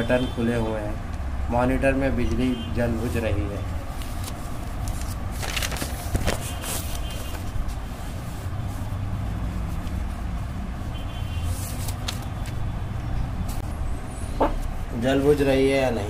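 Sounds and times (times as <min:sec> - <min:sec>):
paper rustling: 0:03.0 - 0:12.7.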